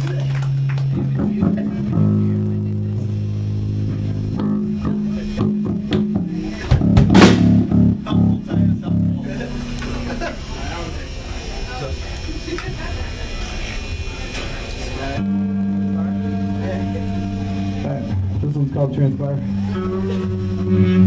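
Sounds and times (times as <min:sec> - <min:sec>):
live rock band playing: 0:00.0 - 0:11.3, 0:15.0 - 0:21.0
voices murmuring: 0:00.0 - 0:21.0
cymbal crash: 0:06.2 - 0:07.9.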